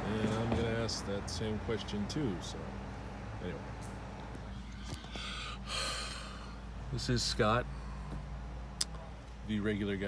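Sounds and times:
steady low hum: 1.3 - 10.0
man breathing heavily: 4.5 - 6.8, 7.6 - 8.4.

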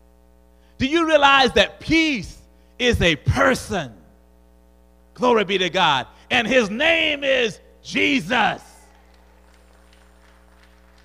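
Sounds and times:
electrical hum from sound system: 0.0 - 11.0.

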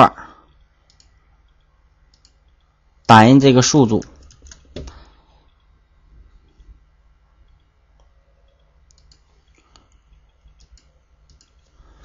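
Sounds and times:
faint computer clicks: 0.5 - 2.8, 7.4 - 11.8.

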